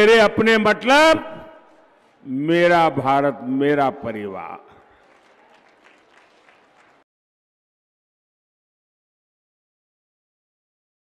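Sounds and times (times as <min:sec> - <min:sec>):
faint crowd applause: 0:04.7 - 0:07.1.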